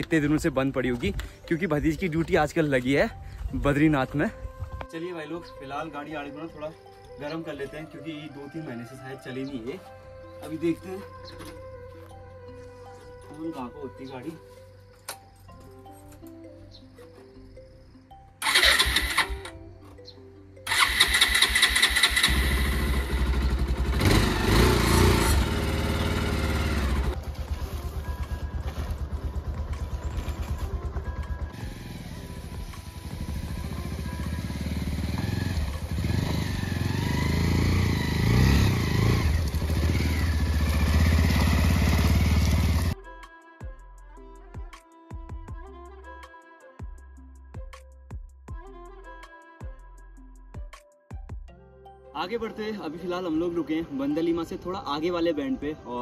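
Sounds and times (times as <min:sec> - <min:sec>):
motorcycle engine cranking: 0:18.4 - 0:19.6, 0:20.7 - 0:43.0
motorcycle engine running: 0:21.1 - 0:43.0.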